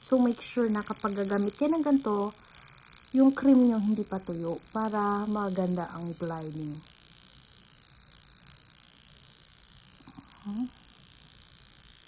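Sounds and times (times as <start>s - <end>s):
high-pitched electrical whine: 0.0s - 12.0s.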